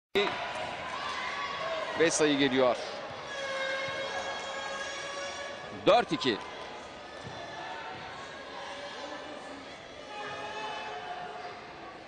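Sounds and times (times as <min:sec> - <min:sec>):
arena crowd din: 0:00.2 - 0:12.0.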